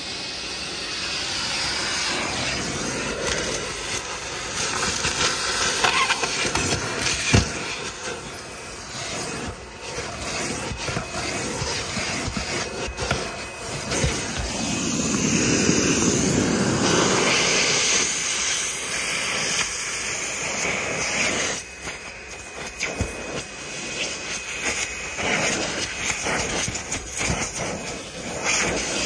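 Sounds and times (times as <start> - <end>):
vacuum cleaner sucking: 0.0 - 29.0.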